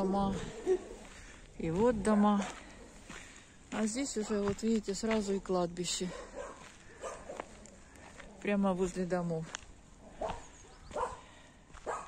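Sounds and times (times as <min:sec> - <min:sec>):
dog barking faintly: 0:06.0 - 0:07.7, 0:10.1 - 0:12.0.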